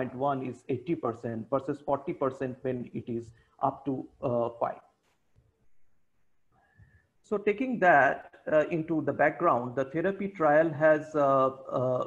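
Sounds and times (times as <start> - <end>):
person talking: 0.0 - 4.9.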